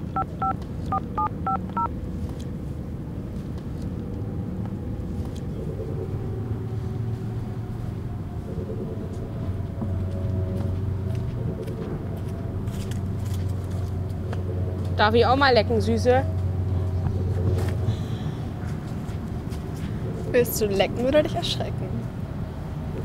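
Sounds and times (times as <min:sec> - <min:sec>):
low mechanical drone: 0:00.0 - 0:23.0.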